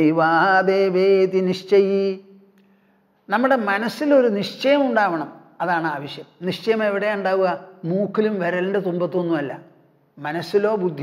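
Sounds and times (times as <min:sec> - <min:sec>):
man chanting: 0:00.0 - 0:02.4.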